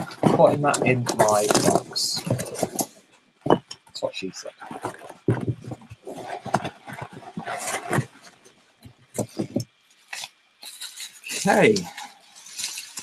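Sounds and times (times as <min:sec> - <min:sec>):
bubble wrap rustling: 0:04.6 - 0:08.5, 0:09.1 - 0:13.0.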